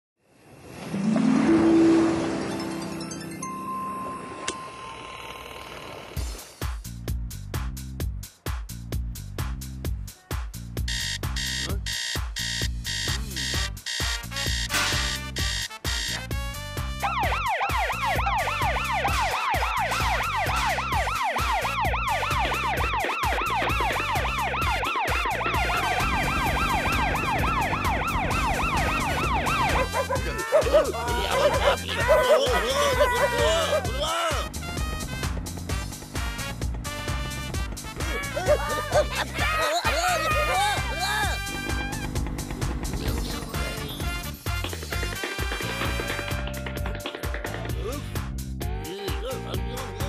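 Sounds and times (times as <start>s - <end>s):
steady high tone: 1.0s - 5.9s
background music with steady beat: 6.3s - 50.0s
yelping siren wail: 17.0s - 34.5s, 38.0s - 42.1s.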